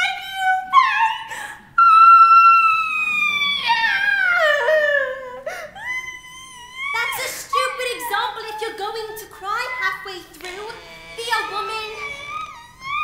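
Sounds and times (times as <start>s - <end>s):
woman wailing and sobbing: 0.0s - 13.0s.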